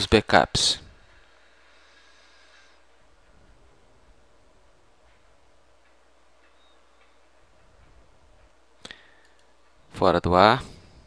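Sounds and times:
computer mouse clicks: 0:09.1 - 0:09.5.

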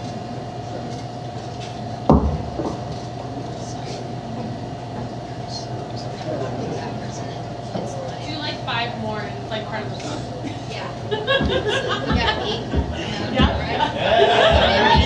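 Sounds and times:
amplifier electrical hum: 0:00.0 - 0:15.0
faint murmur of voices: 0:00.0 - 0:15.0
sharp low thumps: 0:11.3 - 0:13.7.

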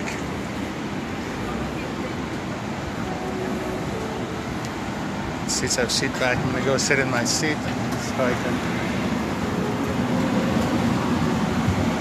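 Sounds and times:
air conditioning rushing: 0:00.0 - 0:12.0.

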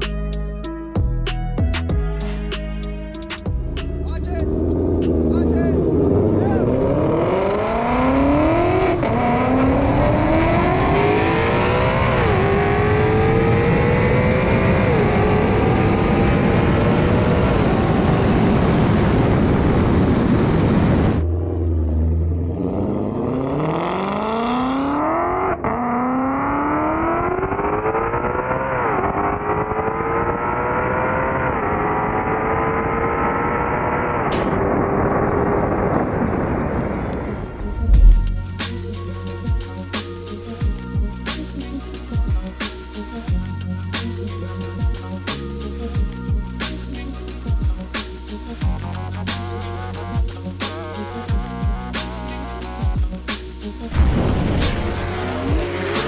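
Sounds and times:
car engine accelerating through gears: 0:03.8 - 0:38.7, 0:53.7 - 0:56.0.

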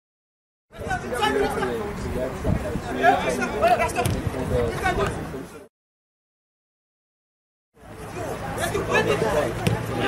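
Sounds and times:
voices calling and chattering: 0:00.7 - 0:05.7, 0:07.8 - 0:10.0.

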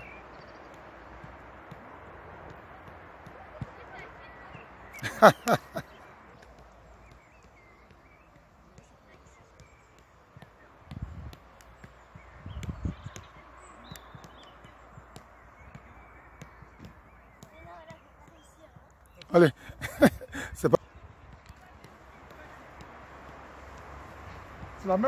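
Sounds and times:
dull low thumps: 0:12.0 - 0:13.4.

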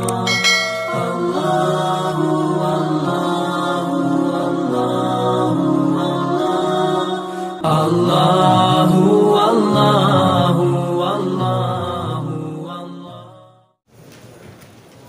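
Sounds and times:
melodic chanted singing: 0:00.0 - 0:13.6.

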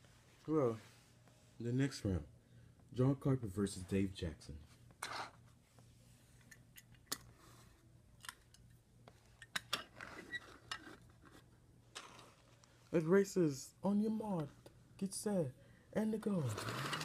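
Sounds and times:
toy cars clicking and tapping: 0:16.2 - 0:17.0.

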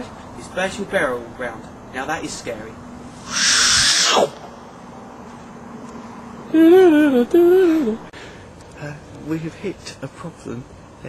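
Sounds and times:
loud hiss with falling glide: 0:03.1 - 0:04.4.

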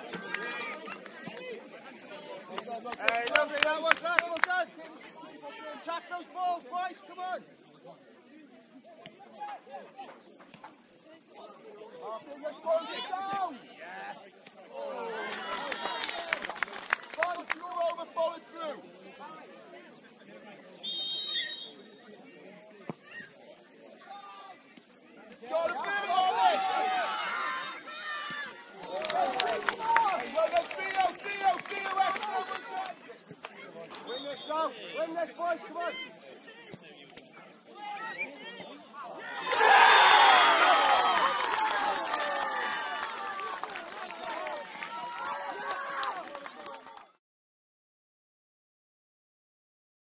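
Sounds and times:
people shouting on a football pitch: 0:12.3 - 0:13.6, 0:14.7 - 0:16.4, 0:25.4 - 0:33.0, 0:37.8 - 0:46.9
crowd shouting and cheering: 0:14.7 - 0:18.4, 0:25.4 - 0:33.0, 0:37.8 - 0:47.2.

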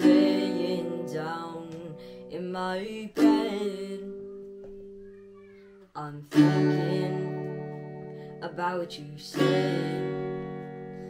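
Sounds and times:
acoustic guitar strumming: 0:00.0 - 0:05.1, 0:06.0 - 0:11.0.

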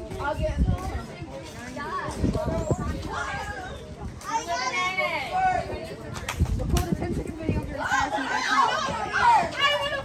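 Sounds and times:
children talking and exclaiming: 0:00.0 - 0:10.0.

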